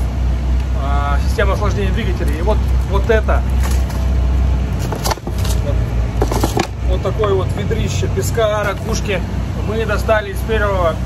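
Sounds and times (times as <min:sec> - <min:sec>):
boat engines droning: 0:00.0 - 0:11.0
plastic jug clicking and rattling: 0:02.2 - 0:04.1, 0:04.8 - 0:06.8.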